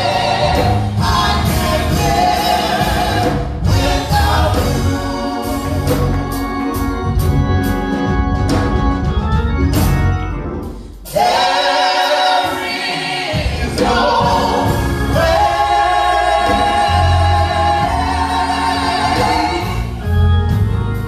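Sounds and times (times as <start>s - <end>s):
gospel vocal group singing: 0.0s - 7.2s, 11.0s - 20.6s
organ accompaniment: 0.0s - 21.0s.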